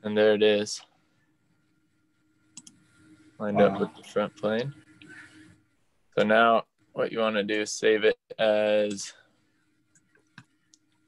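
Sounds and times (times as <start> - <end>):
faint hum: 0.0 - 11.0
faint clicks: 2.4 - 2.9.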